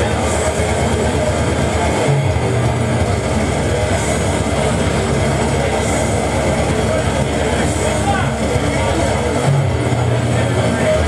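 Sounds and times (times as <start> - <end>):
death metal band playing loud: 0.0 - 11.0.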